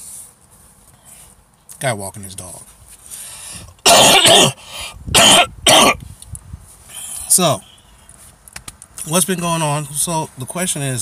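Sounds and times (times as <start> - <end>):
man coughing: 3.8 - 6.0.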